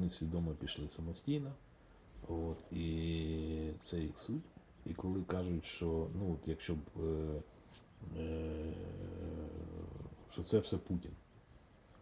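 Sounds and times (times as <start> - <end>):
man's drawn-out hesitation sound: 2.2 - 11.2.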